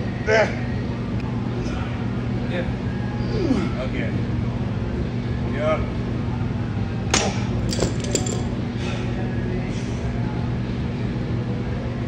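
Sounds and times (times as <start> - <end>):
steady low hum: 0.0 - 12.0
metal gym equipment clinking: 7.2 - 8.5.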